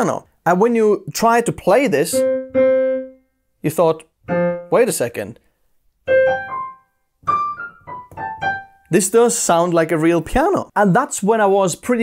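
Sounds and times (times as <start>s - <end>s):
digital piano notes: 2.1s - 3.3s, 4.3s - 5.0s, 6.1s - 9.0s.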